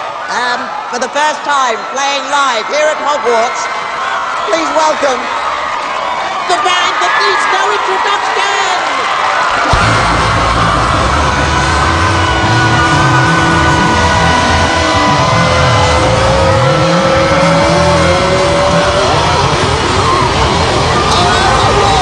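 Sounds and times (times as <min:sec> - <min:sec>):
bass guitar: 0:09.6 - 0:22.0
electric guitars sustained notes: 0:09.7 - 0:22.0.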